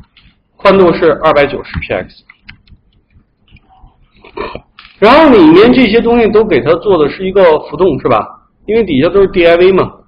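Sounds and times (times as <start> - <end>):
computer keyboard keystrokes: 2.3 - 3.7.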